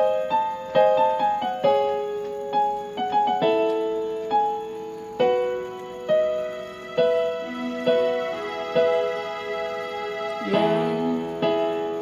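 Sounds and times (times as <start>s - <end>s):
slow piano keyboard melody: 0.0s - 12.0s.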